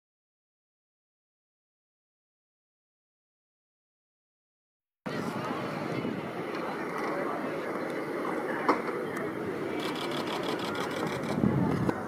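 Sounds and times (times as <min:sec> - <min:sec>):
distant spectators chattering: 0:05.1 - 0:12.0.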